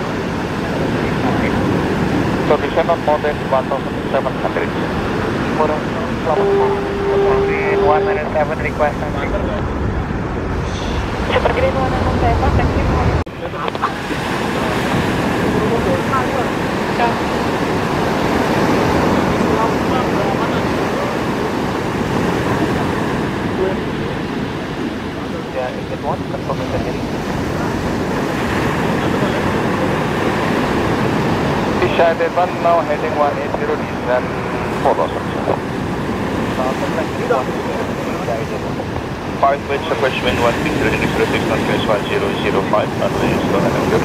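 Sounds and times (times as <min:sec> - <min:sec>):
jet airliner rumble: 0:00.0 - 0:44.0
surf: 0:00.0 - 0:44.0
wind: 0:00.0 - 0:44.0
onlookers chatting: 0:02.5 - 0:17.5.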